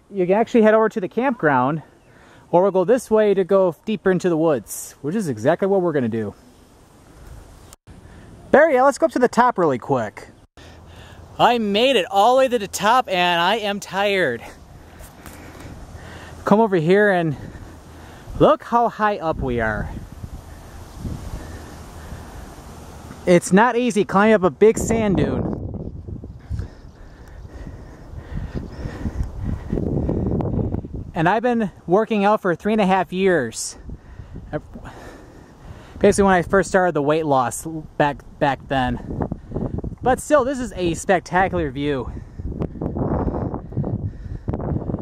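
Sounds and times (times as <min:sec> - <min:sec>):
wind buffeting microphone: 0:12.6 - 0:23.0, 0:24.2 - 0:31.9, 0:32.7 - 0:36.9, 0:37.5 - 0:45.0.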